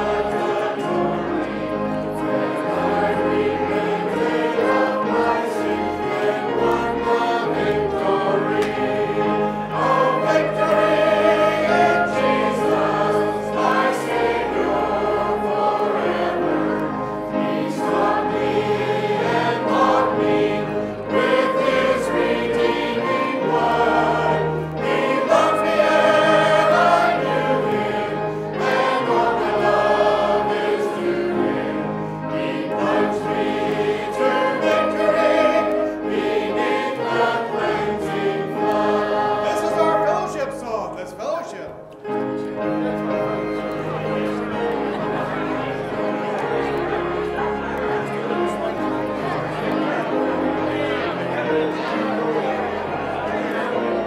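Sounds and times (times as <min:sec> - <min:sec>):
choir singing a hymn: 0:00.0 - 0:41.2, 0:42.0 - 0:54.0
instrumental accompaniment: 0:00.0 - 0:54.0.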